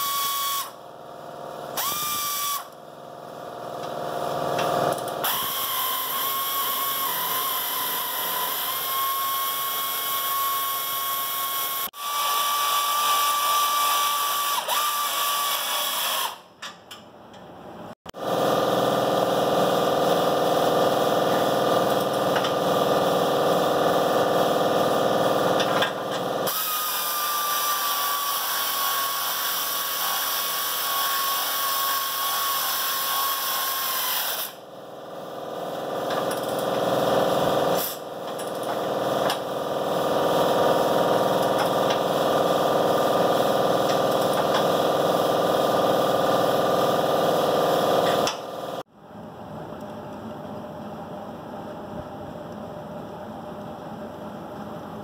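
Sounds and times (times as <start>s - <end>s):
pneumatic tool whirring: 0.0s - 0.8s, 1.7s - 2.8s, 3.8s - 16.7s, 18.2s - 34.7s, 35.3s - 48.9s.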